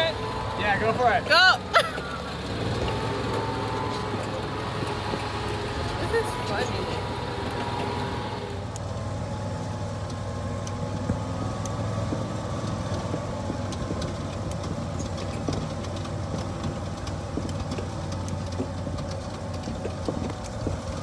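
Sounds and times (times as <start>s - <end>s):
body clicks and rattles: 0.0s - 21.0s
utility vehicle engine humming: 0.0s - 21.0s.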